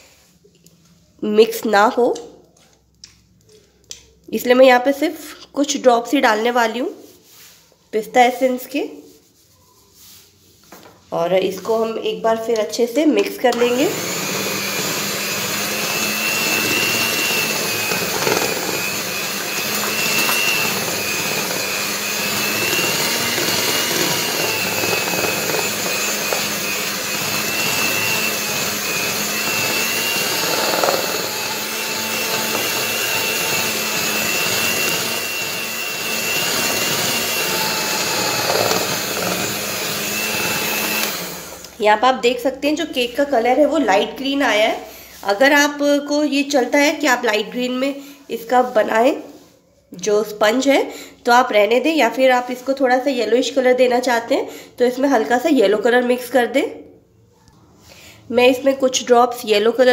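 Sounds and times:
electric hand mixer whining: 13.5 - 41.9.

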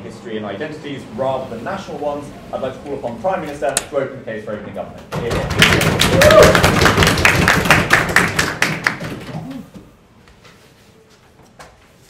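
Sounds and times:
people clapping: 5.2 - 9.8.

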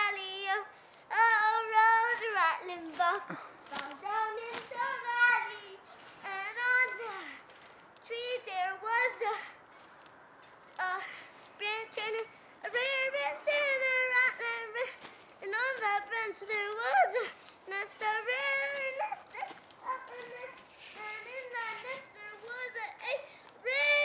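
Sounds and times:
child singing: 0.0 - 7.4, 8.0 - 9.6, 10.8 - 24.0.

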